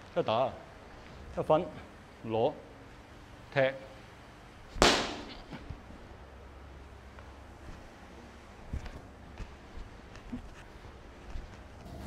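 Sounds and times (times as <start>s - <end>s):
sharp slap-like crack: 4.7s - 5.6s.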